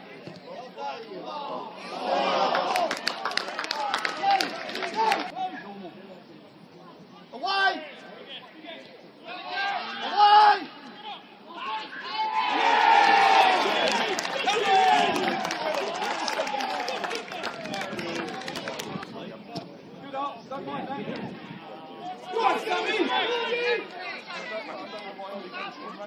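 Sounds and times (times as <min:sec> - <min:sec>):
crowd shouting and cheering: 0:01.0 - 0:05.4, 0:09.3 - 0:19.0, 0:21.2 - 0:26.0.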